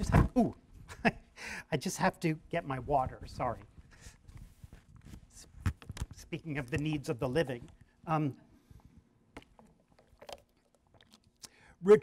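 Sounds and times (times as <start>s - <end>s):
man speaking: 1.7s - 3.6s, 6.2s - 8.4s, 11.8s - 12.0s
person drinking water: 7.6s - 11.8s.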